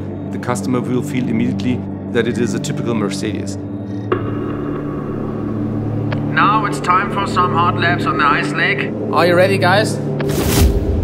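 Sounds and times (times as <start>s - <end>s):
low rumbling drone: 3.5s - 9.1s.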